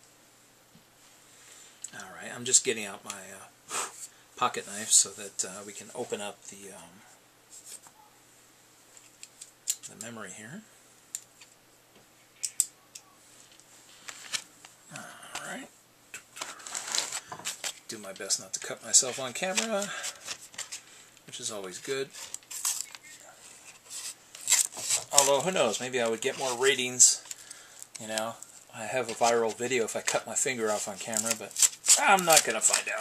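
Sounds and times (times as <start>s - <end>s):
scratchy scraping: 16.3s - 17.8s, 21.9s - 27.3s, 28.9s - 33.0s
knife cutting plastic packaging: 23.7s - 26.7s, 29.0s - 33.0s.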